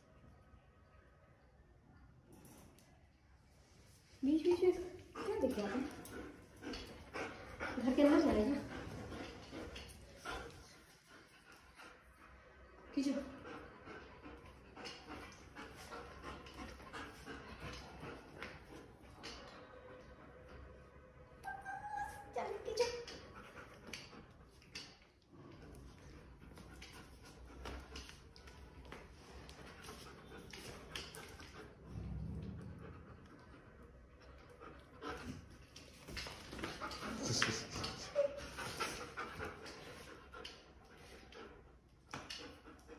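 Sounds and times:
dog panting: 4.4 - 19.8, 21.9 - 42.9.

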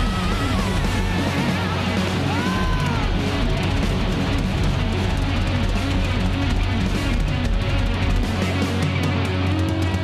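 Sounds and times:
bass guitar: 0.0 - 10.0
drums: 0.0 - 10.0
electric guitar: 0.0 - 10.0.

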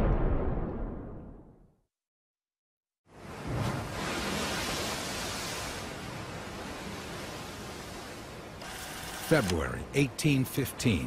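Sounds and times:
wind and sea rushing: 3.0 - 11.0.

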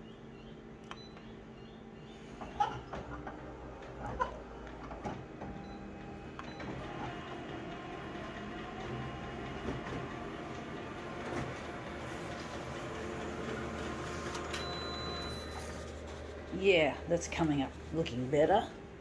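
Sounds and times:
photocopier whirring: 0.4 - 18.7.

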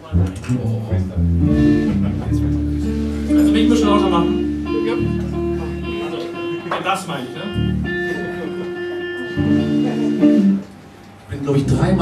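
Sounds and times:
drums: 0.0 - 7.0
bass guitar: 0.0 - 12.0
electric guitar: 0.0 - 12.0.

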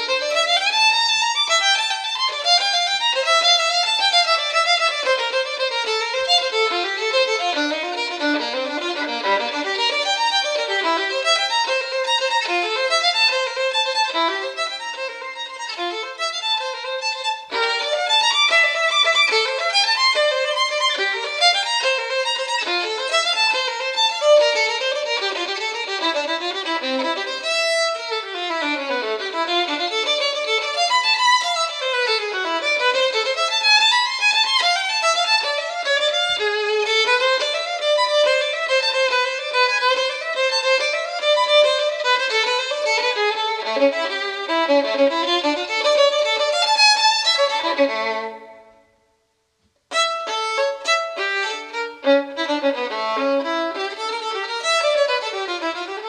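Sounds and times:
violin playing quick runs: 0.0 - 48.7, 49.9 - 56.0.

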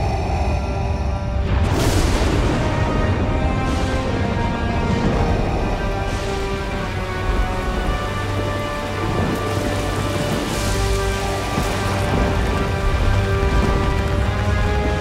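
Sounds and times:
slow music of long held notes: 0.0 - 15.0
heavy rain splashing on hard floor: 1.7 - 15.0.

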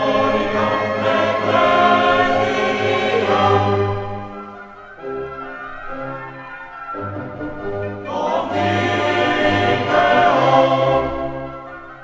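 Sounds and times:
choir singing with orchestra: 0.0 - 12.0.

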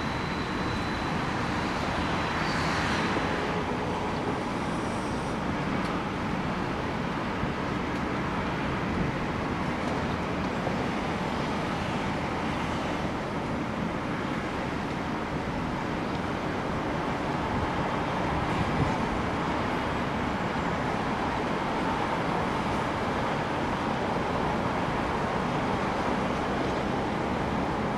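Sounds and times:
distant city traffic hum: 0.0 - 27.9.

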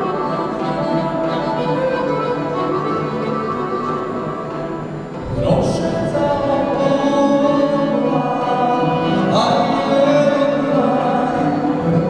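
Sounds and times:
accordions playing chords: 0.0 - 12.0
man singing into a microphone: 5.2 - 12.0.

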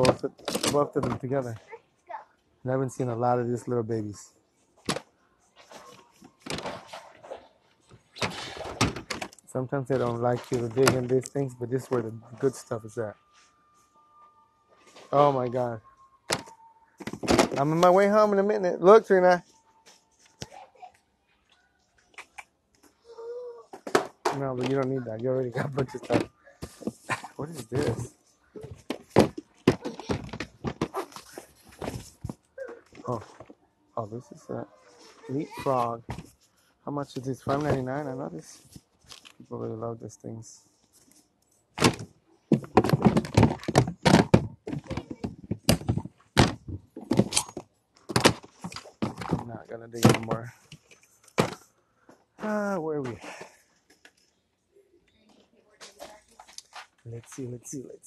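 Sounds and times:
plastic toys clicking and knocking: 0.0 - 1.3, 8.2 - 12.1, 23.7 - 26.9, 41.8 - 51.7
young child whimpering: 23.0 - 23.7.

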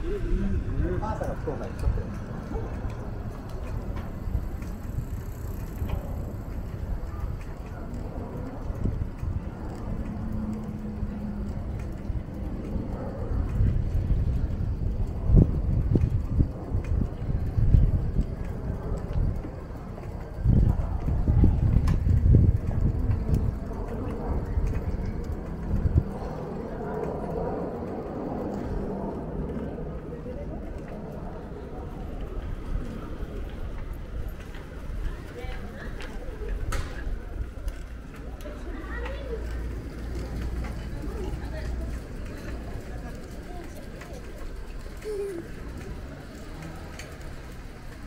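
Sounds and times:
low uneven rumble: 0.0 - 48.0
footsteps on pavement: 0.1 - 48.0.

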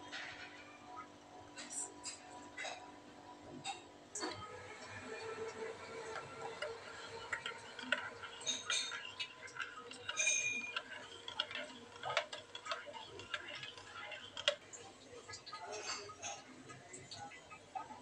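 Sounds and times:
teaspoon clinking in ceramic mug: 7.4 - 14.5.

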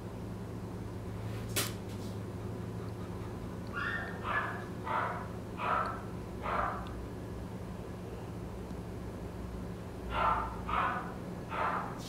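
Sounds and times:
low room hum: 0.0 - 12.0
dog whimpering: 2.6 - 4.7.

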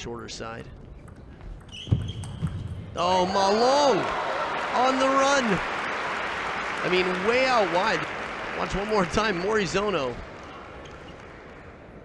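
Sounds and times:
shoe squeak: 0.9 - 2.8.

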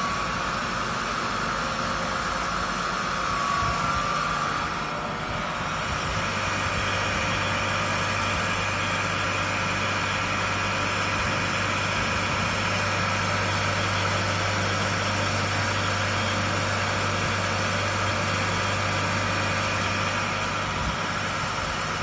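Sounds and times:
coil winding machine whirring: 0.0 - 22.0
steady low hum: 0.0 - 22.0.

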